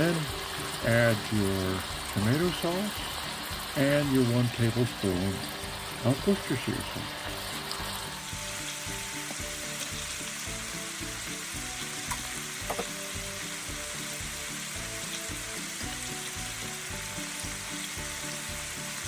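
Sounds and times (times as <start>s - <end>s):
meat and onions sizzling in skillet: 0.0s - 19.0s.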